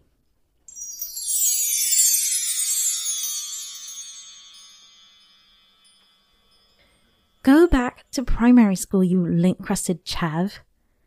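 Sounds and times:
high bell-like chimes: 0.7 - 7.6.

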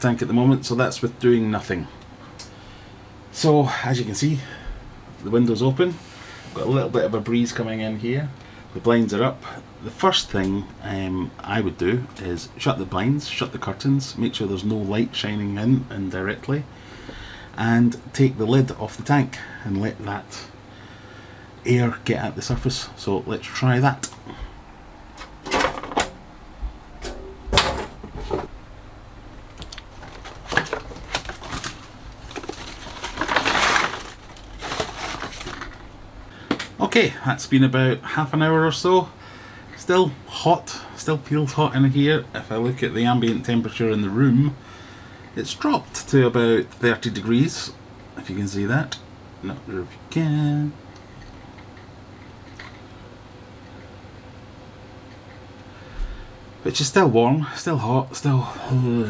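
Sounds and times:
low background hiss and hum: 0.0 - 59.0.

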